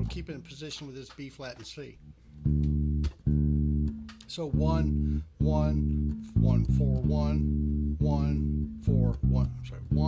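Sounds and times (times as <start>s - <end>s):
electric bass guitar notes: 0.0s - 0.4s, 2.0s - 10.0s.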